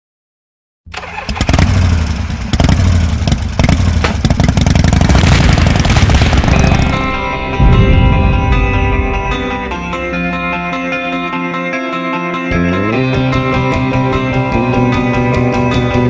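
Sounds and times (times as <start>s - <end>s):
motorcycle engine revving: 0.9s - 10.7s
guitar music: 6.2s - 16.0s.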